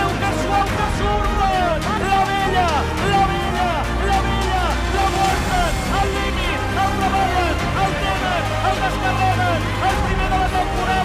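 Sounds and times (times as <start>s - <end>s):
song with vocals and bass: 0.0s - 11.0s.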